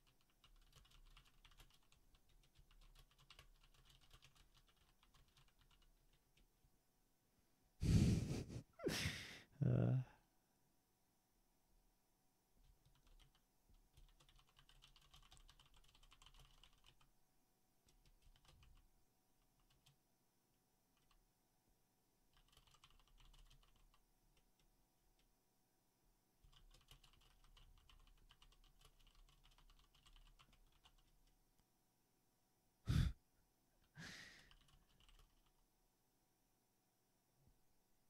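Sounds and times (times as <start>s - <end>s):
faint computer keyboard typing: 0.0s - 6.6s, 12.6s - 17.2s, 17.8s - 20.1s, 20.9s - 21.4s, 22.2s - 25.4s, 26.4s - 31.7s, 33.8s - 35.7s.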